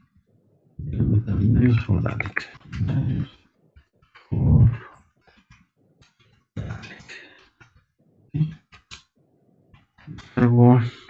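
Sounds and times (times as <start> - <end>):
man murmuring: 0.8 - 3.4, 4.3 - 4.9, 6.6 - 7.2.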